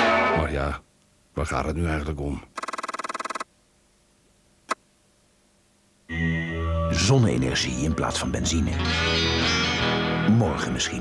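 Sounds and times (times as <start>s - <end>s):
pulsing buzzy sound effect: 2.6s - 3.4s.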